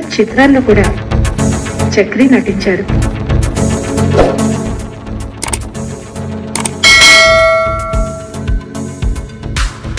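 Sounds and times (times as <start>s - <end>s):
bell chime: 6.8s - 8.5s.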